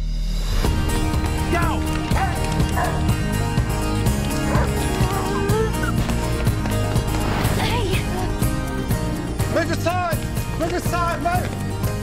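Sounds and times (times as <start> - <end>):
music: 0.0 - 12.0
dog barking: 2.1 - 3.1.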